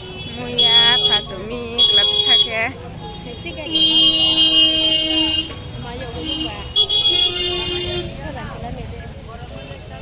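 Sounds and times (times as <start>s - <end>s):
vehicle horns honking: 0.0s - 8.2s
passers-by voices: 0.0s - 10.0s
people chattering: 0.0s - 10.0s.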